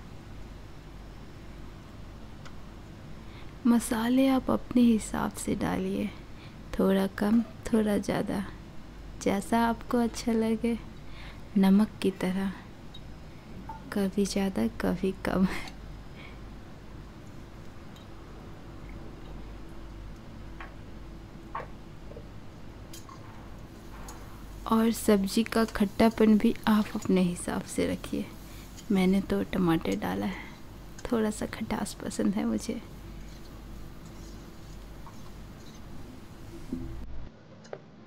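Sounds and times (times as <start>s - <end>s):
low steady hum: 0.0s - 38.0s.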